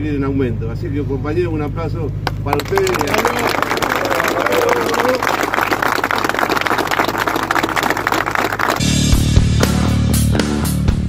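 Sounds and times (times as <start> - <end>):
crowd clapping: 2.3 - 8.8.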